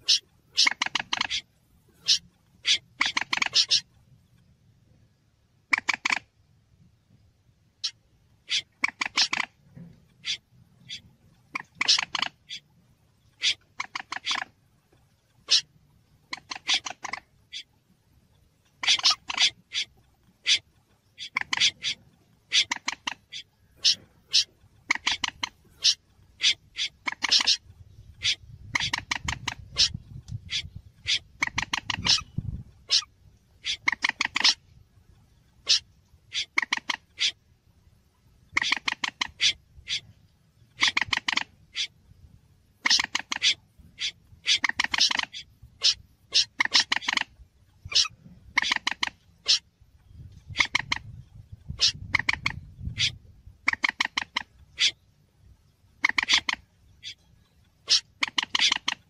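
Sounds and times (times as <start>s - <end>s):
recorded bird lure calls: 0.0s - 4.6s, 5.6s - 6.4s, 7.8s - 37.5s, 38.4s - 55.2s, 55.8s - 59.0s.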